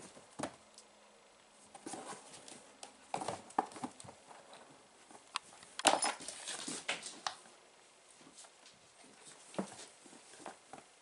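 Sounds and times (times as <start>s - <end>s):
kittens' paws scrabbling on floor: 5.0s - 7.4s.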